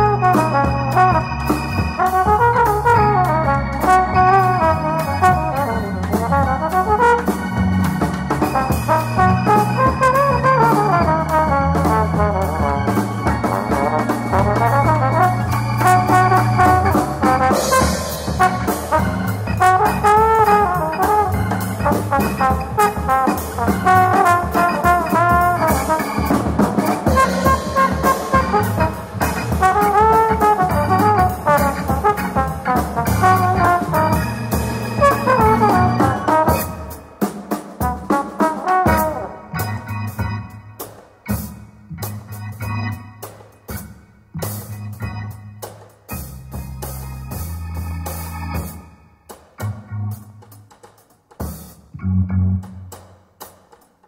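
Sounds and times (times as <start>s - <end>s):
jazz trombone sliding: 0.0s - 48.9s
keyboards: 0.0s - 53.1s
drum kit: 0.0s - 54.0s.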